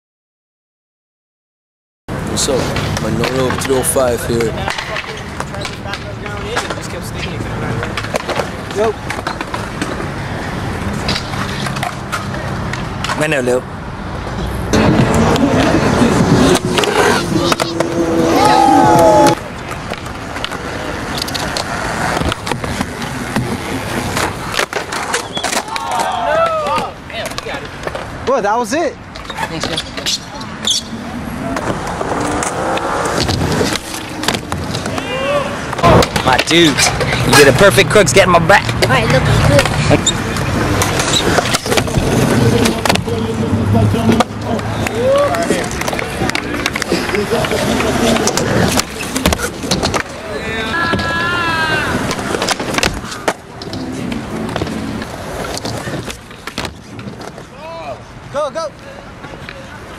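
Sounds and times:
skateboard wheels rolling on concrete: 2.1 - 59.9
skateboard clicks and knocks: 2.3 - 28.4, 29.0 - 37.9, 38.5 - 58.0
faint voices talking: 57.4 - 59.9.

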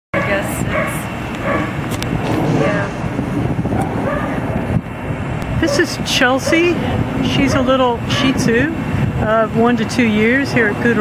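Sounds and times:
dog barking: 0.2 - 1.8, 3.8 - 4.4, 5.7 - 6.8, 7.5 - 7.8
low background rumble: 0.3 - 6.2.

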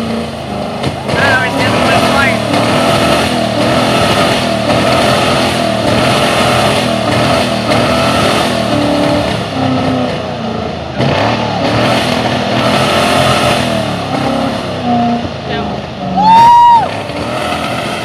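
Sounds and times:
engines revving hard: 0.0 - 18.0.

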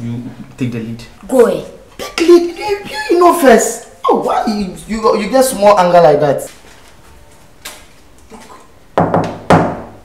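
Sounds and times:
loud knocks on door: 9.0 - 10.0.

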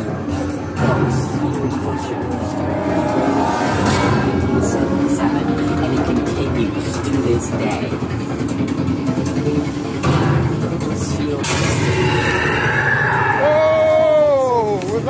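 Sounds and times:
indistinct voices: 0.0 - 15.0
dense low rumble: 0.1 - 12.0.

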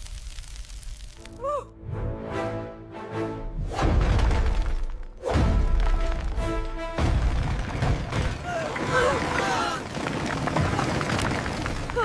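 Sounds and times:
dramatic music: 1.4 - 7.8
debris crashing and rumbling: 5.7 - 12.0.

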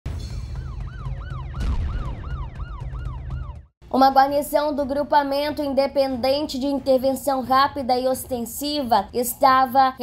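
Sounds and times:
yelping emergency siren: 0.6 - 3.7.

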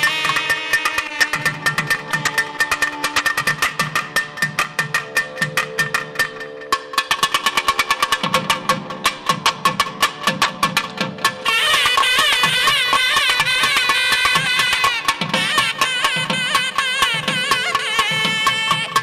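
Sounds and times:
barrel drums playing fast: 0.0 - 19.0.

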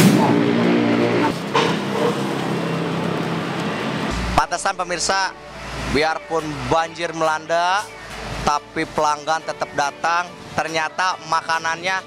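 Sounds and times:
even rushing noise: 0.0 - 6.4
rushing sweep falling in pitch: 3.8 - 6.0
sustained musical chord: 4.1 - 7.1.

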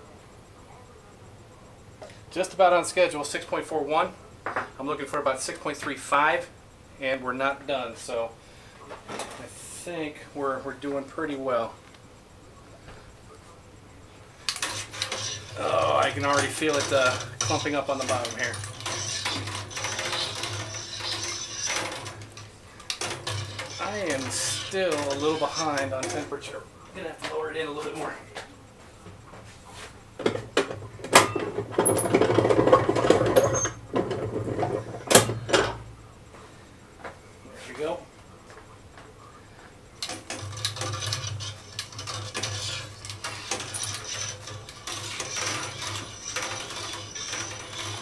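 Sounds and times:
metal rod scraping metal pot: 14.5 - 26.4, 40.0 - 48.0.

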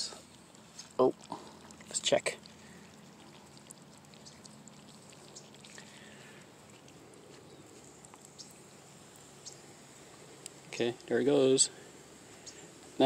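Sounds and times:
faint water trickle: 0.0 - 13.0.

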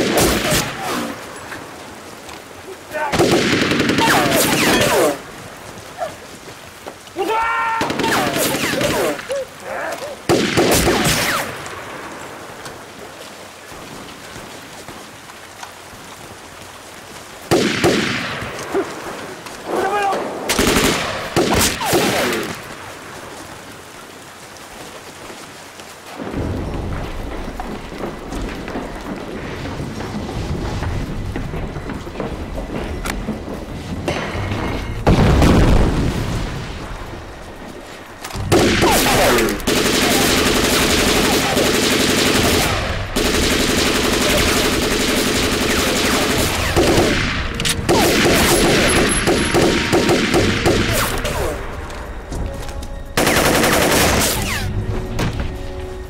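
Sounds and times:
rain: 0.0 - 56.0
people shouting: 7.2 - 11.0
machine gun fire: 38.5 - 51.3.

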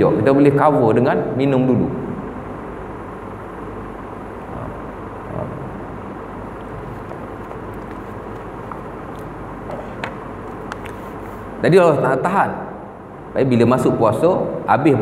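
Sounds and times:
background hum and hiss: 0.0 - 15.0.

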